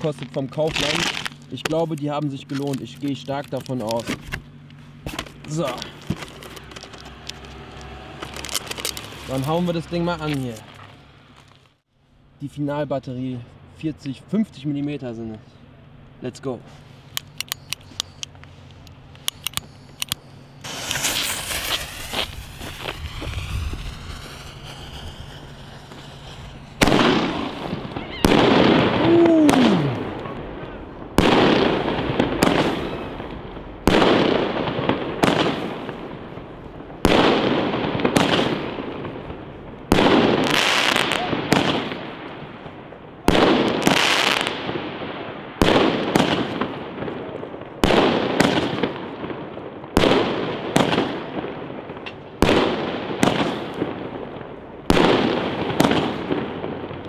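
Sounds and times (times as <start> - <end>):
firework shells bursting: 17.1 - 44.9.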